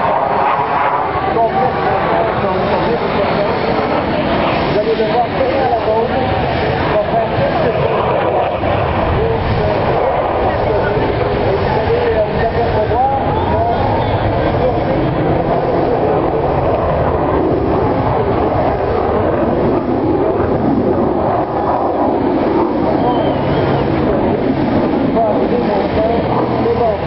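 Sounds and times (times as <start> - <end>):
fighter jet flying over: 0.0 - 27.0
spectators talking: 0.0 - 27.0.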